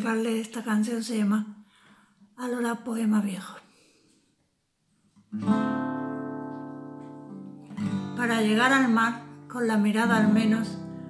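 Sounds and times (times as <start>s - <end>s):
acoustic guitar chord strummed: 5.3s - 11.0s.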